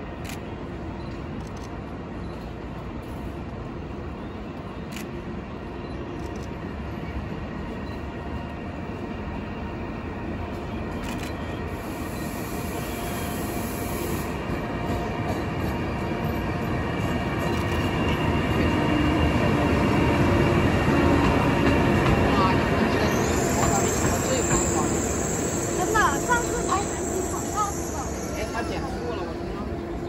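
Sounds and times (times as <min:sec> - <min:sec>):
electric locomotive hum: 0:00.0 - 0:30.0
wheels rumbling on track: 0:05.3 - 0:30.0.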